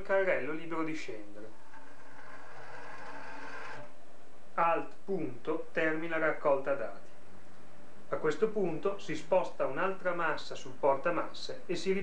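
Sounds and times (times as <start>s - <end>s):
cart wheels and pulley whirring: 1.4s - 3.9s.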